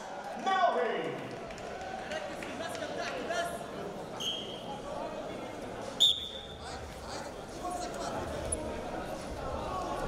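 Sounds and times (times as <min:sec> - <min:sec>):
babble of voices: 0:03.4 - 0:10.0.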